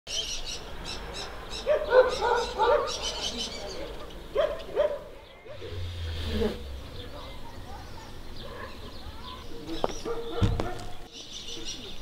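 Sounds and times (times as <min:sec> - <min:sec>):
small birds chirping: 0:00.1 - 0:12.0.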